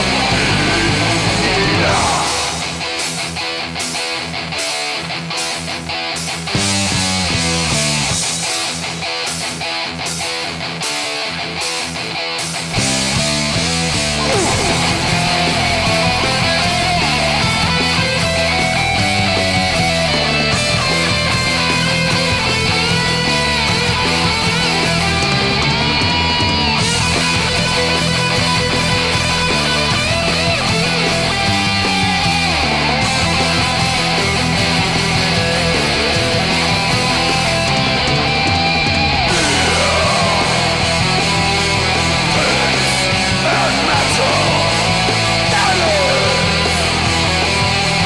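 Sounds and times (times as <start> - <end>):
bass guitar: 0.0 - 48.0
drums: 0.0 - 48.0
electric guitars: 0.0 - 48.0.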